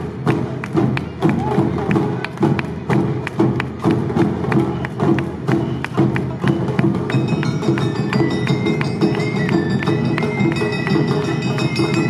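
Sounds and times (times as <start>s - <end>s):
festival drums: 0.0s - 12.0s
band melody: 7.0s - 12.0s.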